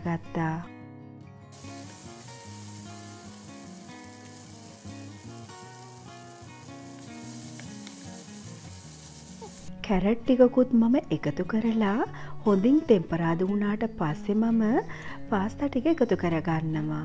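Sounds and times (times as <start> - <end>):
background music: 0.0 - 17.0
sausages sizzling in a frying pan: 1.5 - 9.8.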